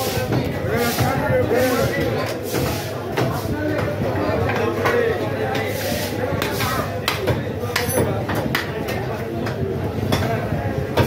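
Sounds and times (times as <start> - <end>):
market chatter: 0.0 - 11.0
cleavers chopping meat on wood: 0.2 - 11.0.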